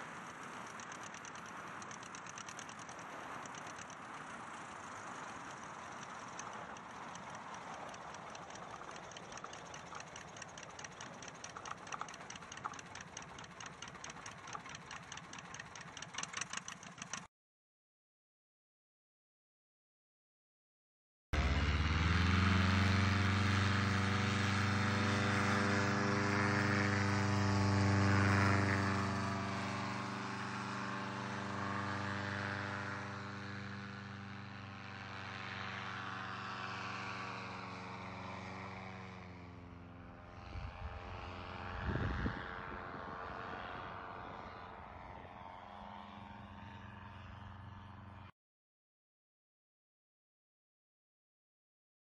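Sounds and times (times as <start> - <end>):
paraglider engine and propeller: 0.0 - 17.3, 21.4 - 48.3.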